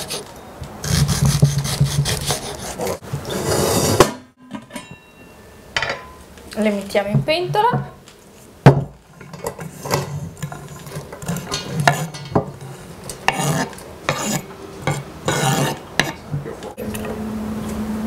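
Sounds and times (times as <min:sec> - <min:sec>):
metal utensil scraping pot: 0:09.1 - 0:16.8.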